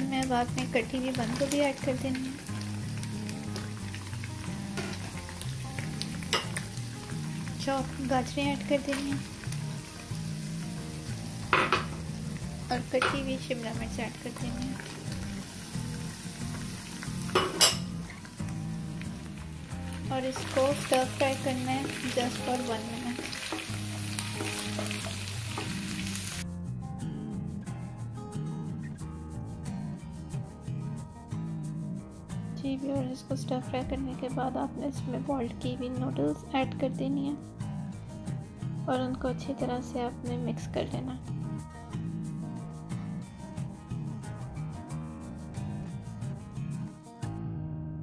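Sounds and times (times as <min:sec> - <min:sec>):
food sizzling in a wok: 0:00.0 - 0:26.4
background music with steady beat: 0:00.0 - 0:48.0.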